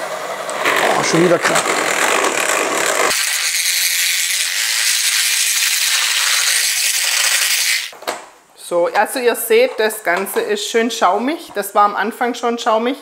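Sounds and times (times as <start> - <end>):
electric hand mixer whirring: 0.5 - 8.0.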